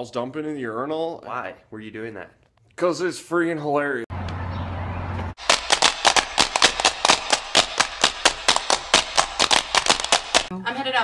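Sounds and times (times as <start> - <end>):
hard-shoe step dancing taps: 5.4 - 10.5.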